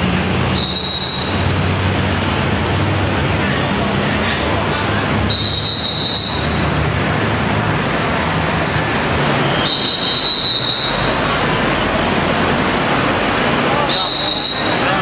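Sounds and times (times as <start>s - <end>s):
road traffic noise: 0.0s - 15.0s.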